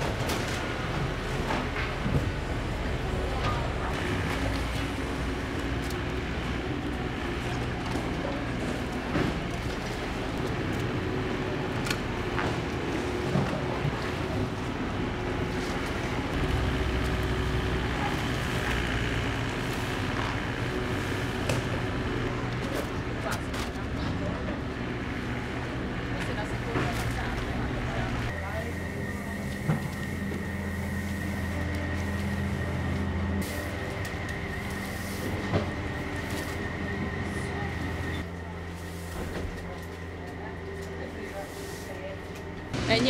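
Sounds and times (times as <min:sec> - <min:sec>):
diesel engine running: 0:00.0 - 0:43.0.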